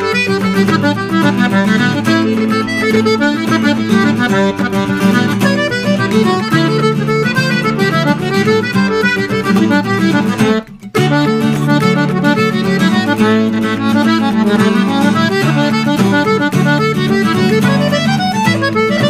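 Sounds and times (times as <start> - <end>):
accordion melody: 0.0 - 19.0
acoustic guitar accompaniment: 0.0 - 19.0.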